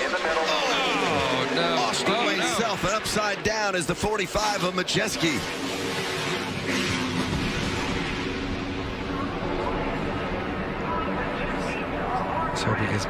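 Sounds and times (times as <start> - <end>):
noisy track sound: 0.0 - 13.0
race truck engines: 0.0 - 13.0.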